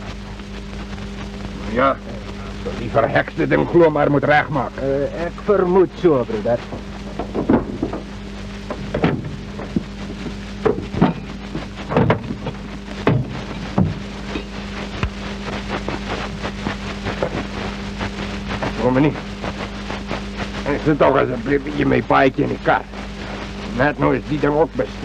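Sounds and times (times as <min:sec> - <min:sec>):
film soundtrack hiss and hum: 0:00.0 - 0:25.0
short knocks: 0:08.7 - 0:11.3.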